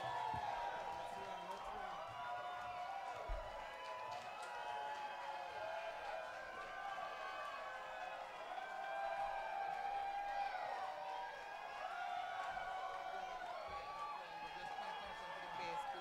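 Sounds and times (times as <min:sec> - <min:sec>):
crowd singing and calling out: 0:00.0 - 0:01.2.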